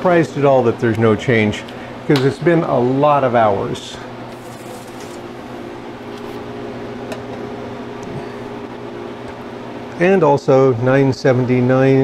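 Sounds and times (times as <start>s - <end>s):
freeze dryer humming: 0.0s - 12.0s.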